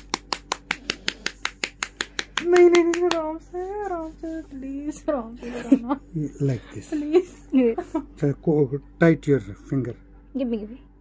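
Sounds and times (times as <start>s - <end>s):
finger taps on skin: 0.0s - 3.3s.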